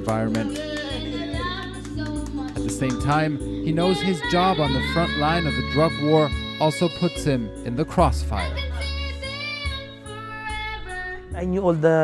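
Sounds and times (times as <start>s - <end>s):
backing music with bass: 0.0s - 9.8s
boy singing into microphone: 0.1s - 11.4s.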